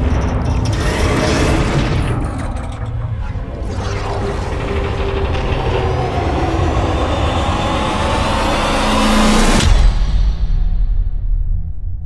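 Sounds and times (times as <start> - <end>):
deep low boom and rumble: 0.0 - 12.0
rising riser sound effect: 2.8 - 10.0.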